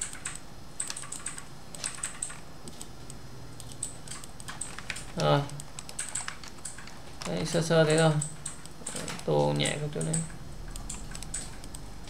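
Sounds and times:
keyboard and mouse clicking: 0.0s - 11.9s.

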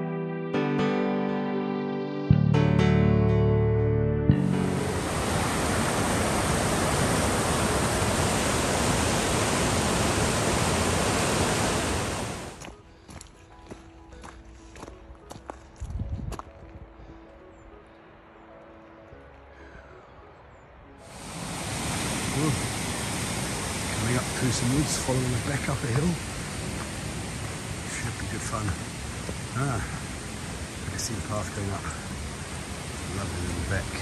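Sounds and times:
stream rushing over stones: 4.5s - 12.6s, 21.1s - 34.0s
footsteps on gravel: 12.6s - 16.8s
wind on microphone: 15.8s - 17.2s.

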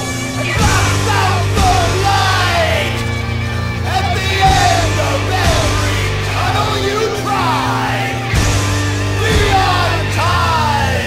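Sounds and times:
heavy band of bass guitars drums: 0.0s - 11.0s
man half-singing half-yelling: 0.2s - 8.5s, 9.1s - 11.0s.

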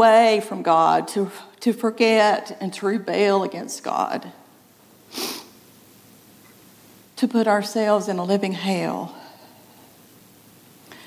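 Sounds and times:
woman sniffing: 5.1s - 5.6s.

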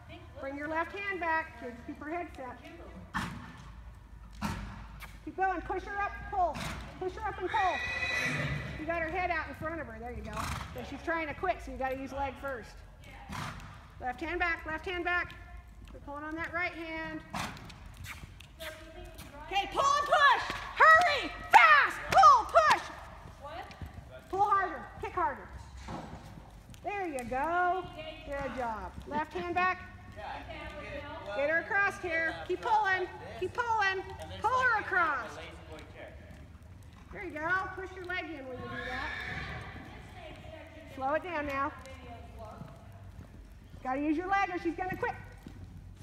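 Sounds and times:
faint hoofbeats: 0.0s - 46.0s.

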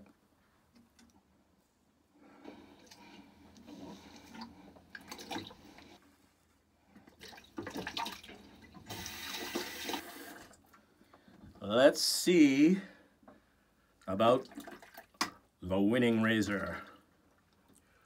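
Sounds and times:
tap water running into sink: 7.2s - 10.5s.

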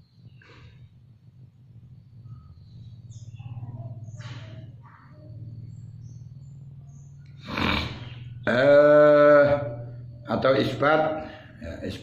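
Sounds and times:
faint high chirps: 0.0s - 12.0s
steady low hum: 0.0s - 12.0s.

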